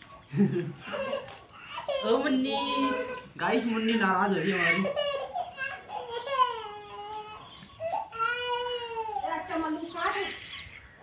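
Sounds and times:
small child crying: 0.8 - 3.3, 4.5 - 9.4.

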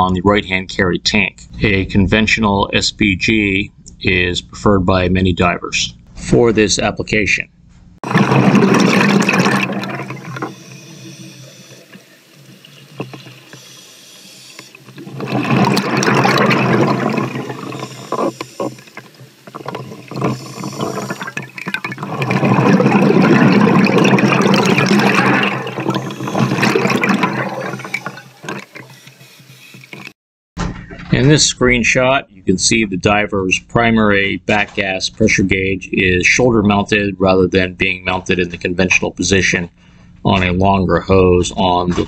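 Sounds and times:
diver's bubbles rushing underwater: 8.0 - 30.1.

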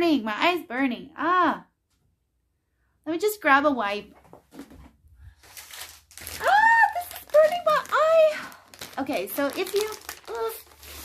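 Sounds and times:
wet wipes packet crinkling: 5.3 - 11.0.

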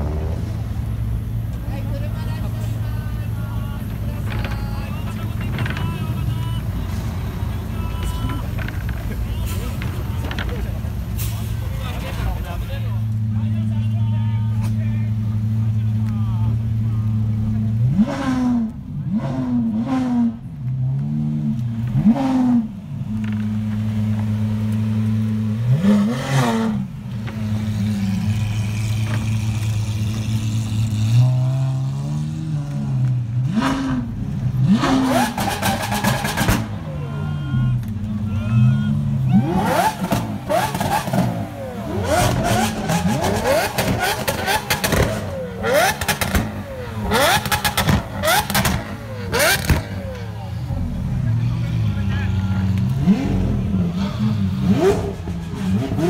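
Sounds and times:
car engines idling and revving: 0.0 - 56.0
sharp exhaust pops: 42.0 - 50.0.

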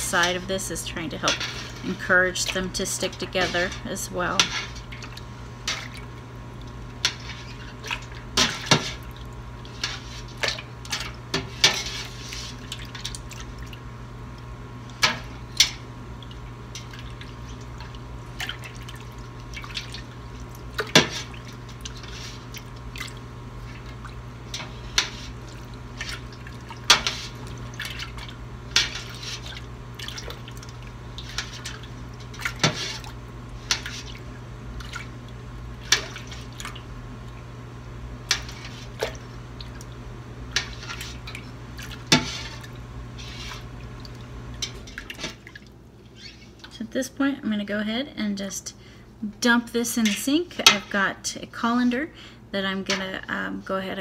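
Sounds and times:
whey splashing and dripping: 14.8 - 37.5, 38.3 - 46.8.

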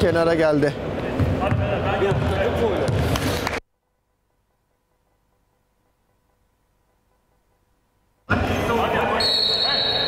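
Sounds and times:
basketball bouncing on court: 1.2 - 3.1.

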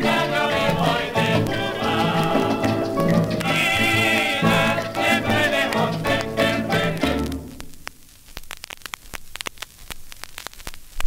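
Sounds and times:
record clicks and crackle: 0.0 - 11.0.

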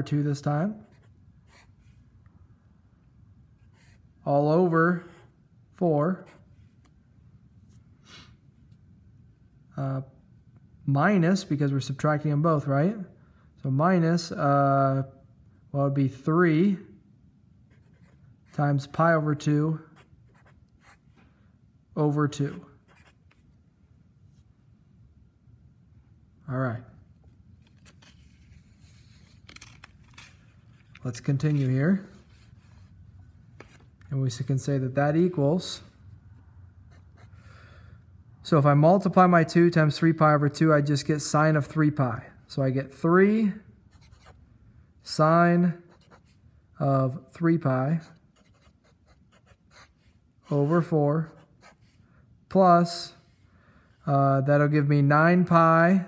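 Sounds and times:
marker pen writing on whiteboard: 0.7 - 1.9, 3.6 - 4.1, 4.9 - 5.4, 17.7 - 18.6, 19.9 - 21.1, 22.4 - 23.6, 43.9 - 44.4, 45.8 - 46.4, 47.9 - 52.0
marker writing on board: 22.5 - 23.5, 48.0 - 50.2.

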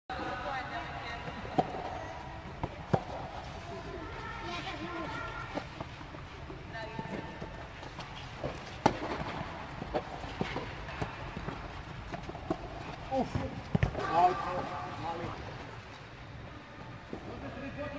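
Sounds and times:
tennis balls struck by rackets: 1.2 - 3.5, 7.0 - 14.6.

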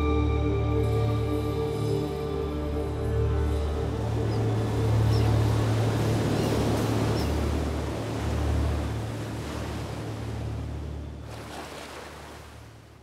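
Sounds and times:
low music drone: 0.0 - 11.3
ocean waves breaking: 0.0 - 13.0.

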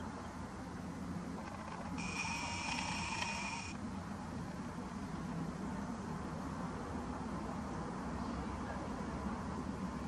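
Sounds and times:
lens zoom motor whining: 1.4 - 3.8.

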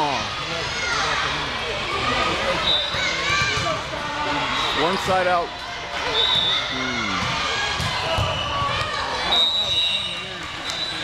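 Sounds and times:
crowd talking and calling: 0.0 - 11.0
volleyball thumps: 7.2 - 9.0.

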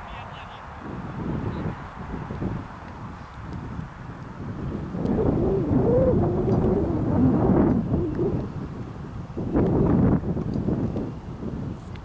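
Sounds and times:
wind buffeting microphone: 0.7 - 12.0
wavering voice: 5.1 - 8.6.

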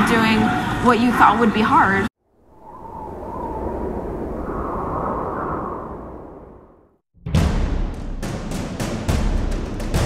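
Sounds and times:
low noisy whoosh: 2.2 - 7.0.

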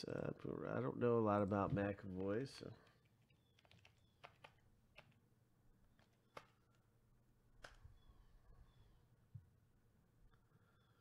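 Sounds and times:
typing on a computer keyboard: 3.0 - 5.2.

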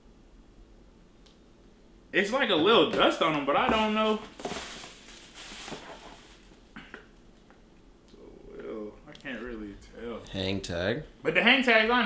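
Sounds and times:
sneakers rustling in shoebox: 3.6 - 6.5.

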